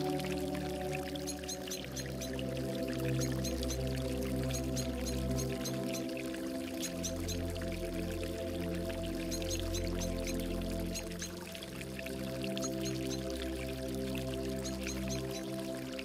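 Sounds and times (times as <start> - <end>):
calm ambient music: 0.0 - 16.0
water pouring and gurgling: 0.0 - 16.0.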